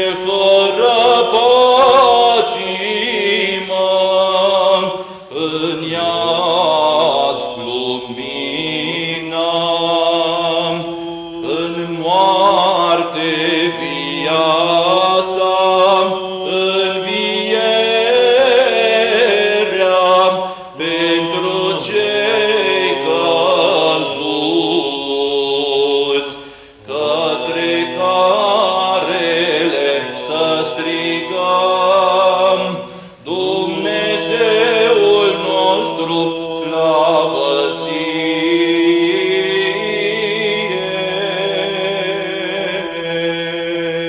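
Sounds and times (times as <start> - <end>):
ornamented chant melody: 0.0 - 44.0.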